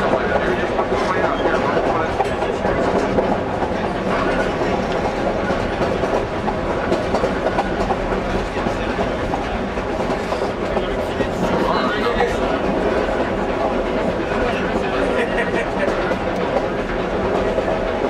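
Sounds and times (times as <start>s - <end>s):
track clicking and clattering: 0.0s - 18.0s
train wheels rumbling on rail: 0.0s - 18.0s.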